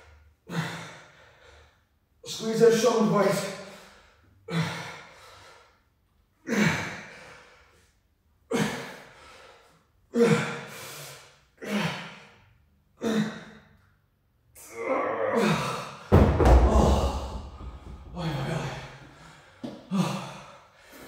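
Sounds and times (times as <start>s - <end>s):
man panting: 0.4s - 1.8s, 3.7s - 5.8s, 6.4s - 7.9s, 8.5s - 13.8s, 16.9s - 21.0s
dumbbells thudding on rubber floor: 16.1s - 18.8s
man exhaling hard with effort: 16.7s - 21.0s.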